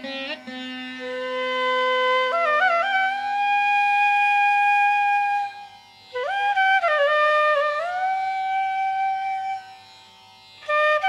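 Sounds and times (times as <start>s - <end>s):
flute long held note: 1.0s - 9.8s.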